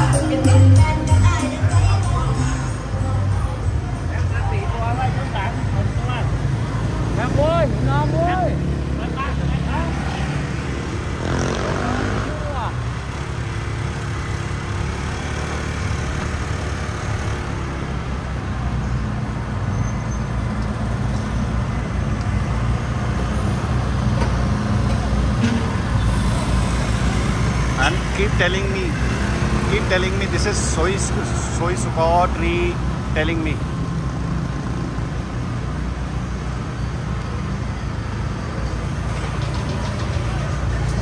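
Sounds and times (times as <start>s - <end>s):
passing voices: 0.0s - 13.3s, 26.1s - 33.8s
scooters and cars passing: 0.0s - 41.0s.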